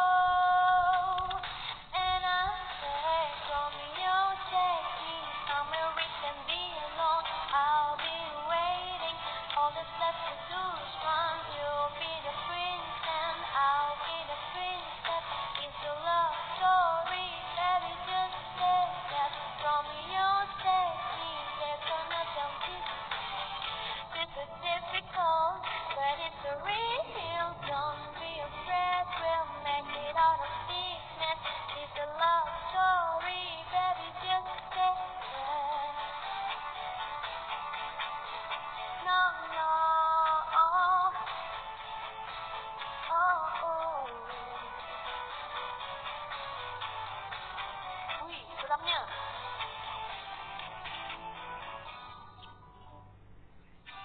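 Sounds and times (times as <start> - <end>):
woman singing: 0.0 - 23.4, 24.0 - 41.6, 43.0 - 45.0, 47.5 - 49.4
backing music: 0.9 - 53.3.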